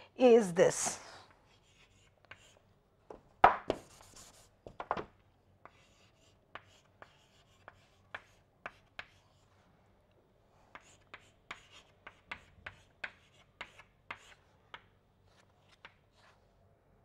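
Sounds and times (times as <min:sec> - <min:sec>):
chalk tapping and scratching: 0:01.4 - 0:02.7, 0:03.5 - 0:04.9, 0:05.6 - 0:09.6, 0:10.6 - 0:16.4.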